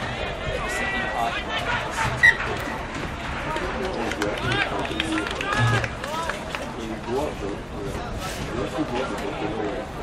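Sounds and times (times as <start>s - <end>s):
people talking: 0.0s - 10.0s
steady outdoor noise: 0.0s - 10.0s.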